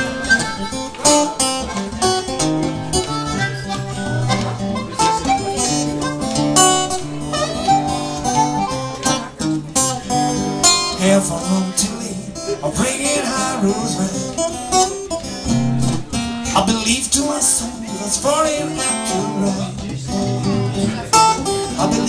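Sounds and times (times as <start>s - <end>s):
blues harmonica: 0.0s - 16.5s
acoustic guitar strumming: 0.0s - 22.0s.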